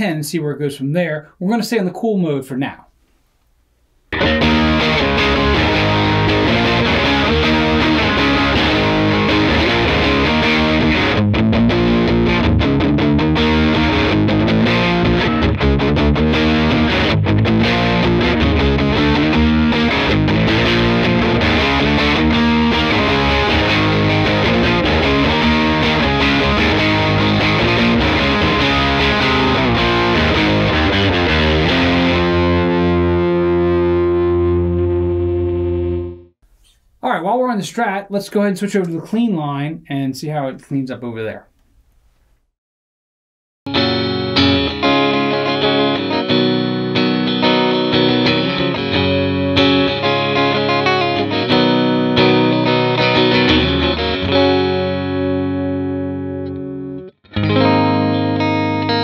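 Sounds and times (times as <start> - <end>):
distorted electric guitar riffs: 4.1 - 36.3, 43.7 - 59.0.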